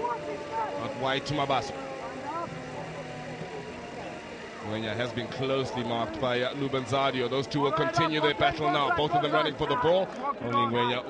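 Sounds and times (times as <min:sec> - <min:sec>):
indistinct male voices: 0:00.0 - 0:11.0
steady background noise: 0:00.0 - 0:11.0.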